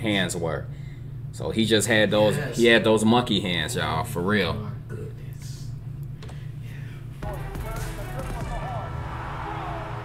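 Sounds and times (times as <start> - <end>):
ball bouncing on hardwood court: 7.2 - 8.8.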